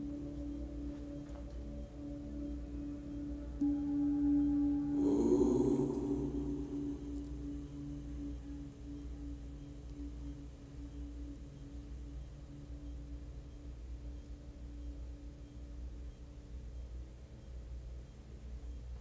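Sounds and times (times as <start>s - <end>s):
meditation bell ringing: 0.0s - 11.2s.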